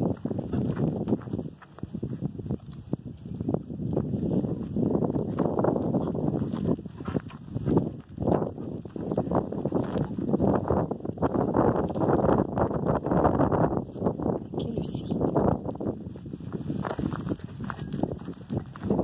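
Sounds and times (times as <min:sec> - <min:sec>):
footsteps on gravel: 0:00.0 - 0:11.7, 0:15.6 - 0:19.0.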